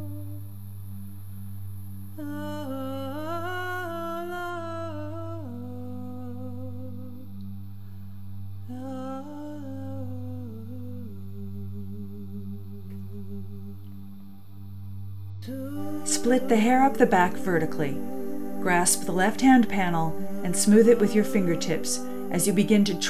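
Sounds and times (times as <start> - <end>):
steady low drone: 0.0 - 23.0
voice humming a slow melody: 0.0 - 23.0.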